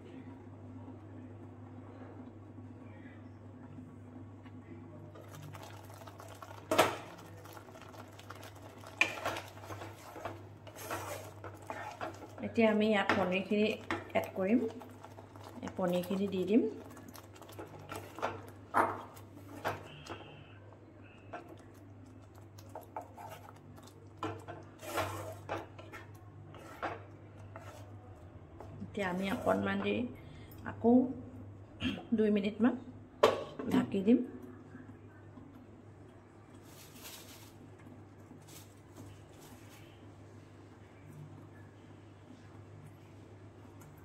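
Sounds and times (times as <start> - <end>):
spatula scraping in thick gravy: 9.0 - 12.4, 22.7 - 23.9, 24.8 - 27.9.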